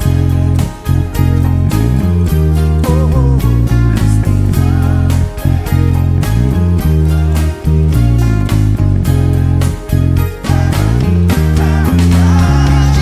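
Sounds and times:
electric bass low notes: 0.0s - 13.0s
guitar line: 0.0s - 13.0s
drums keeping a steady beat: 10.4s - 13.0s.

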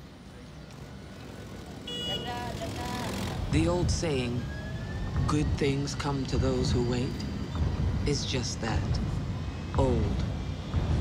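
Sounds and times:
traffic and street noise: 0.0s - 11.0s.

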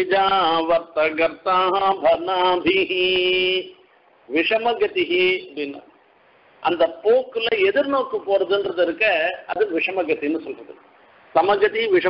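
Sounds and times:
man chanting: 0.0s - 5.9s, 6.6s - 10.7s.

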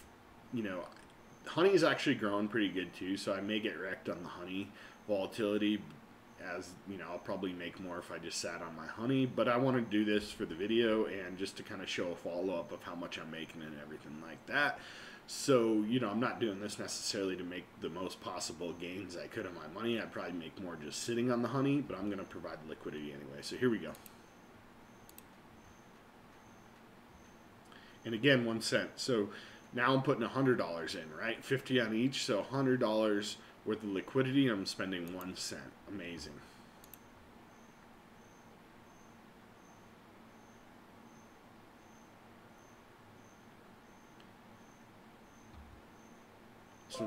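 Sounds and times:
faint high-pitched chirp: 0.4s - 3.6s, 23.9s - 28.2s, 36.8s - 47.0s
computer mouse double click: 25.1s - 25.3s.

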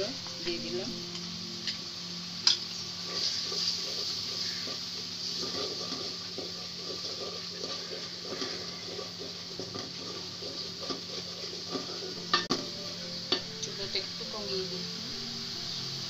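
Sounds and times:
paste sizzling in oil: 0.0s - 16.0s.

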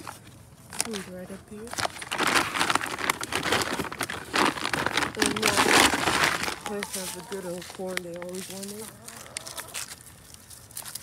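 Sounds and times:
footsteps through dry leaves: 0.0s - 11.0s.

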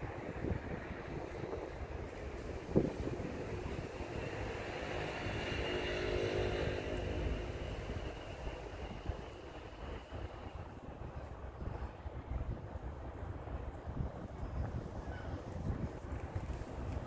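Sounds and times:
wind rumbling on microphone: 0.0s - 17.0s
faint motor hum: 1.1s - 11.3s.

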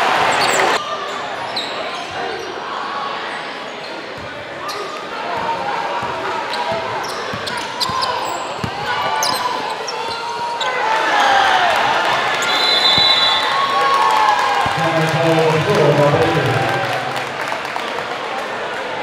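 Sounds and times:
crowd chatter and shouts: 0.0s - 19.0s
sneaker squeaks on court: 6.5s - 10.6s.

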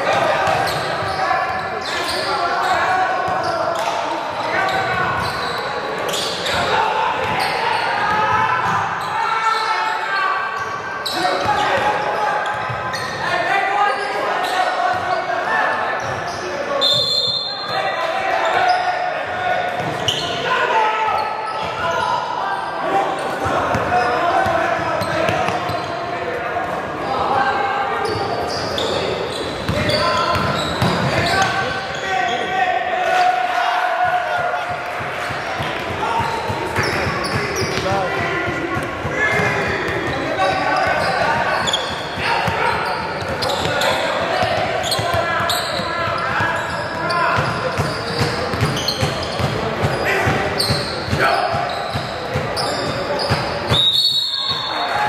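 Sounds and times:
shouts and chatter: 0.0s - 55.0s.

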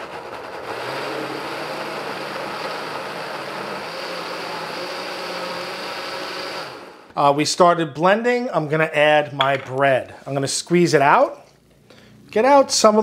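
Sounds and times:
blender motor running: 0.0s - 7.1s.

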